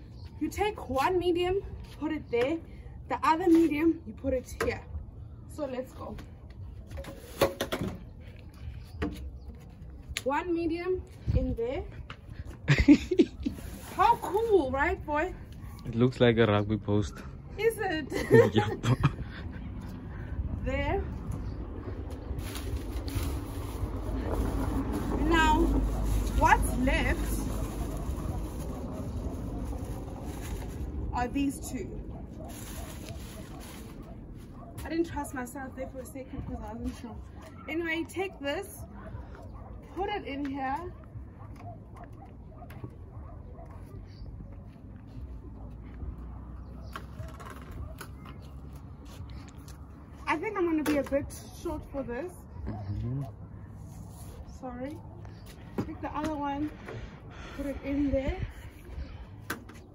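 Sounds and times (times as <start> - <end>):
steady low rumble: 18.3 - 36.8.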